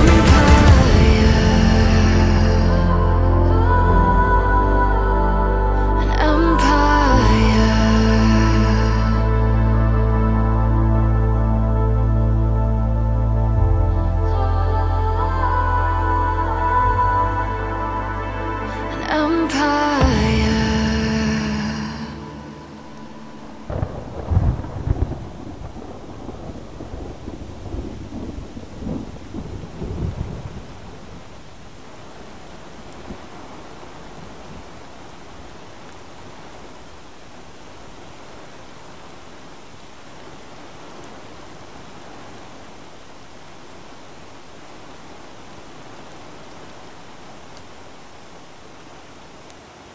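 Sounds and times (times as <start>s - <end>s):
steady rain: 0.0s - 49.9s
rolling thunder: 23.6s - 31.3s.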